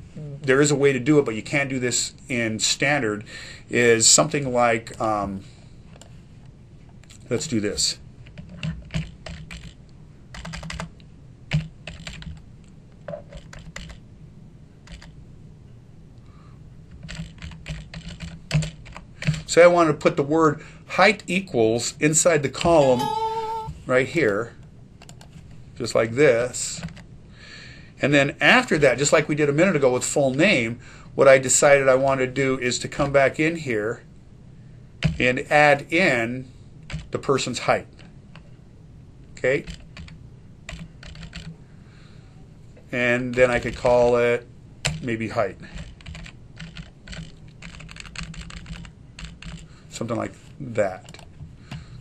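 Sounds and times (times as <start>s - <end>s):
keyboard typing: 8.3s - 10.9s, 11.5s - 12.4s, 13.2s - 14.0s, 14.8s - 15.1s, 17.0s - 19.4s, 39.7s - 41.5s, 45.7s - 49.6s.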